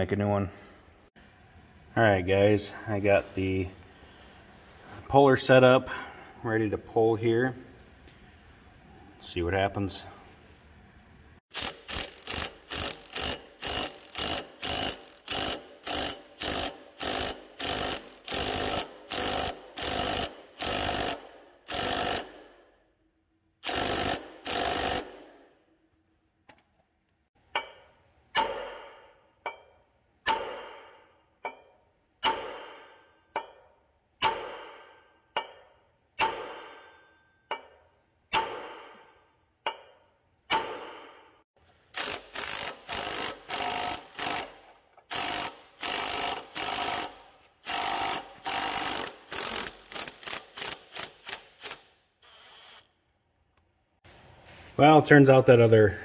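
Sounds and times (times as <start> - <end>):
impact wrench bursts: 11.5 - 22.7, 23.6 - 25.6, 41.8 - 52.9.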